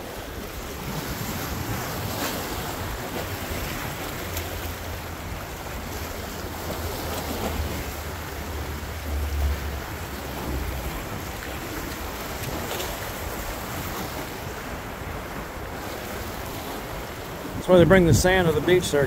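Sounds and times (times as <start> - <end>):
surf washing against rocks: 0.0 - 19.0
wind buffeting microphone: 0.0 - 19.0.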